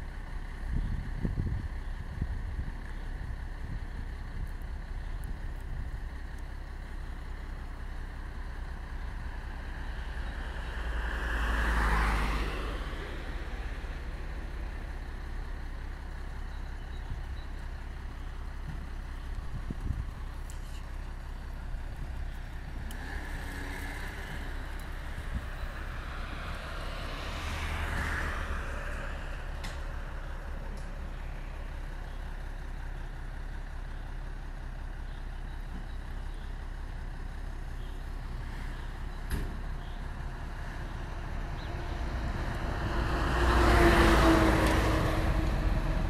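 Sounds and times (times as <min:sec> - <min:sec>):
diesel engine idling: 0:00.0 - 0:46.0
vehicles passing on road: 0:00.0 - 0:46.0.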